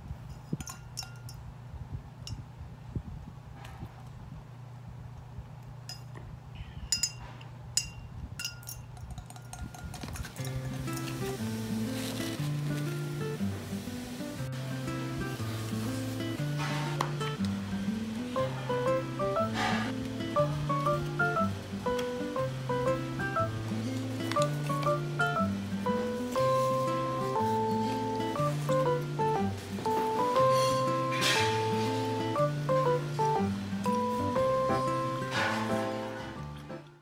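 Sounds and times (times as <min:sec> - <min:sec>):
straw clinking against glass: 0:06.9 - 0:11.3
background music: 0:10.5 - 0:37.0.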